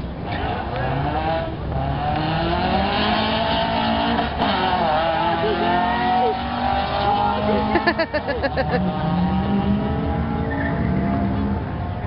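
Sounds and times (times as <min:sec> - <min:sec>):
car engines accelerating hard: 0:00.0 - 0:12.0.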